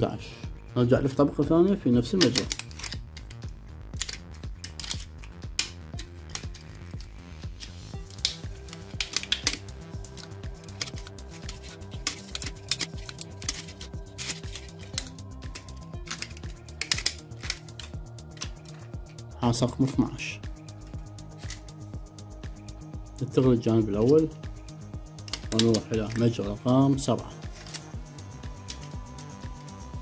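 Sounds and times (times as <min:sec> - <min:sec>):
soft music with steady beat: 0:00.0 - 0:30.0
wire clicking while wound: 0:02.2 - 0:19.3, 0:23.9 - 0:26.6.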